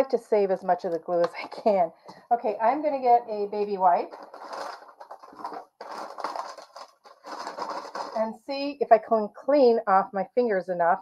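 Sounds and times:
wipes pack rustling: 0:04.1 - 0:08.2.

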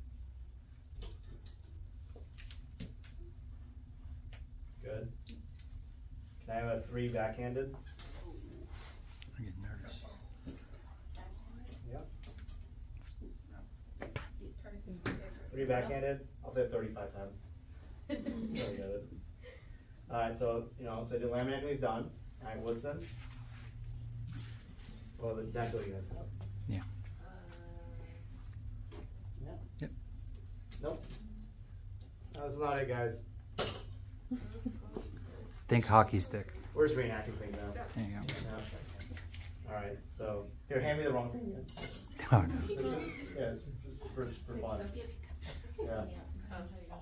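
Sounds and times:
low room hum: 0:00.0 - 0:47.0.

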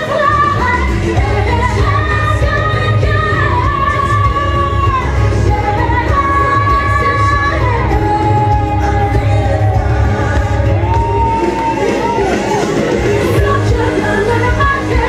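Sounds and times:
backing music with heavy bass: 0:00.0 - 0:15.0
woman singing into a microphone: 0:00.0 - 0:15.0.

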